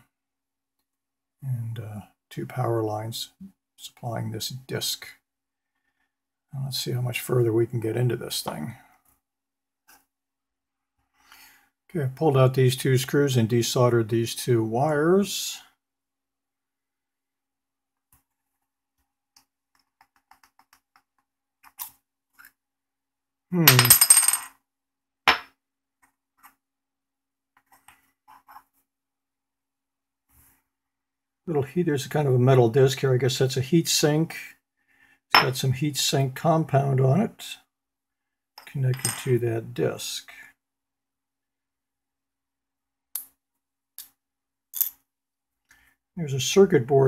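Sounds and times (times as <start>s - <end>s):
metal screws clinking on wood: 23.7s - 24.5s.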